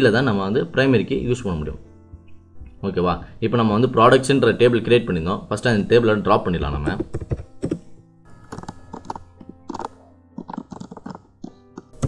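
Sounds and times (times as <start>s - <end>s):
soft background music: 0.0s - 12.0s
typing on computer keyboard: 7.0s - 7.8s, 8.4s - 12.0s.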